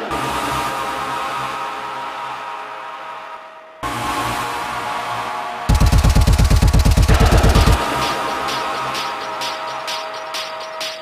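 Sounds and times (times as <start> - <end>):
industrial techno drum roll: 5.7 - 9.5.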